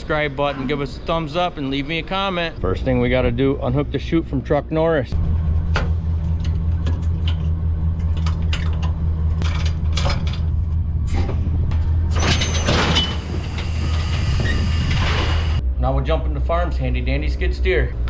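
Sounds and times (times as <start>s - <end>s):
engine running steadily: 0.0s - 18.0s.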